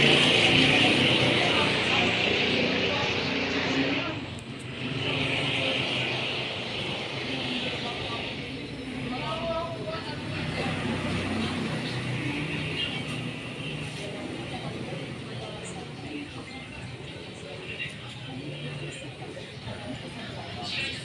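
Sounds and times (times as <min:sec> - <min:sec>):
distant voices: 0:00.0 - 0:21.0
street traffic: 0:00.0 - 0:21.0.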